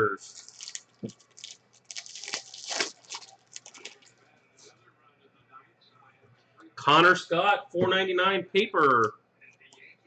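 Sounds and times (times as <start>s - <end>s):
foil wrapper tearing and crinkling: 0.2s - 4.2s.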